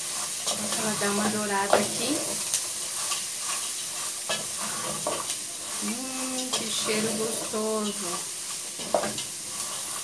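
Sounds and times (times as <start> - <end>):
sausage and onion sizzling in a pot: 0.0 - 10.0
wooden spoon scraping a pot: 0.1 - 7.8, 8.8 - 10.0.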